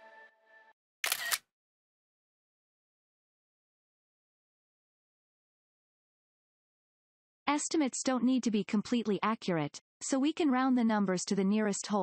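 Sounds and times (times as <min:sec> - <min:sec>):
camera shutter sound effect: 0:01.0 - 0:01.4.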